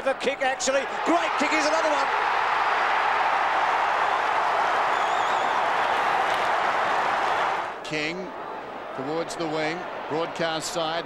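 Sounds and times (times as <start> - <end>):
crowd cheering and applauding: 0.6 - 7.8.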